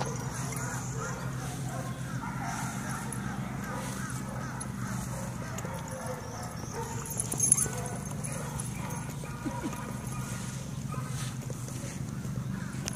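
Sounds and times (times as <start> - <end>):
steady low hum: 0.0 - 12.9.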